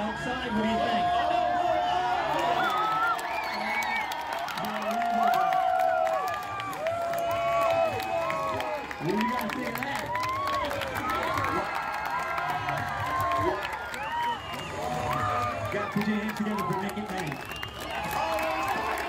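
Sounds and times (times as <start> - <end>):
crowd cheering and shouting: 0.0 - 19.0
people clapping: 2.2 - 19.0.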